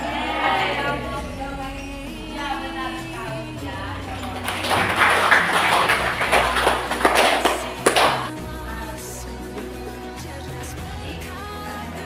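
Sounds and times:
background music: 0.0s - 12.0s
students clapping: 4.1s - 8.4s.

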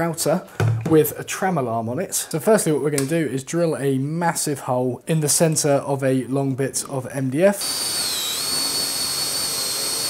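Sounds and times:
cordless drill boring into wood: 7.6s - 10.0s.

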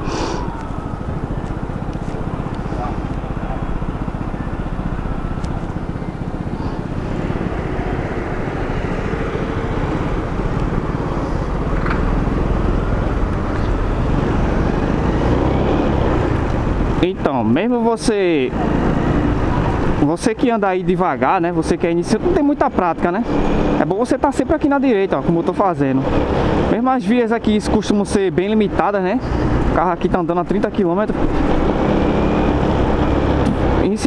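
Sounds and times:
motorcycle engine running: 0.0s - 24.0s, 24.7s - 34.0s.

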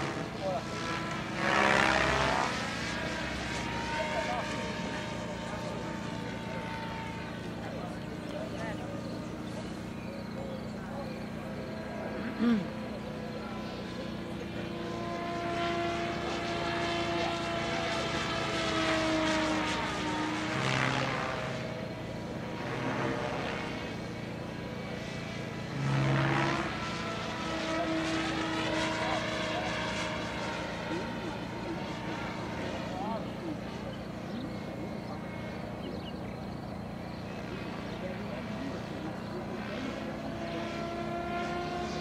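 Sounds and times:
model helicopter engine and rotor: 0.0s - 42.0s.

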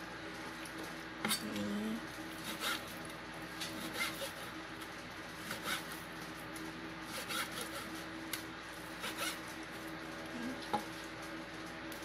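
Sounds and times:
knife scraping on cutting board: 2.4s - 3.0s, 3.6s - 4.5s, 5.4s - 6.0s, 7.1s - 8.0s, 9.0s - 9.4s.

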